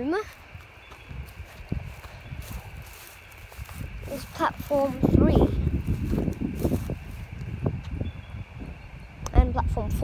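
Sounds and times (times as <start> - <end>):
footsteps on dry grass: 0.0 - 8.2
low rumbling microphone noise: 0.0 - 10.0.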